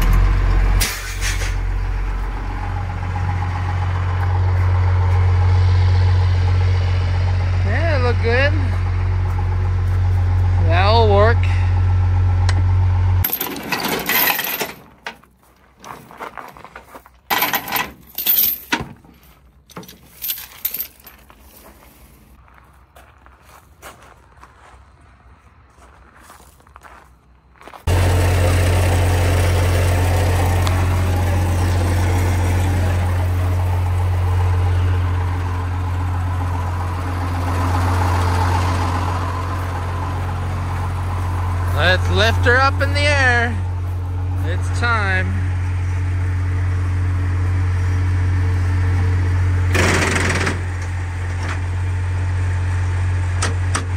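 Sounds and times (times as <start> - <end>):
diesel truck idling: 0.0 - 15.5, 22.2 - 53.9
chains clinking: 13.2 - 14.8, 17.3 - 21.7.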